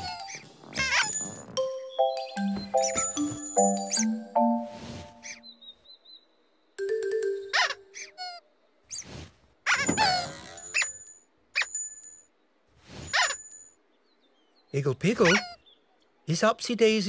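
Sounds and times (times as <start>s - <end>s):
playful children's music: 0.0s - 5.5s, 6.8s - 8.4s
cartoon sound effects: 7.2s - 8.4s.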